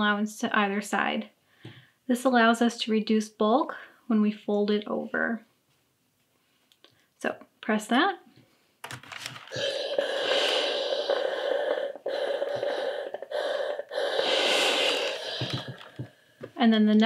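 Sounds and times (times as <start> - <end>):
steam iron hissing: 9.5 - 16.1.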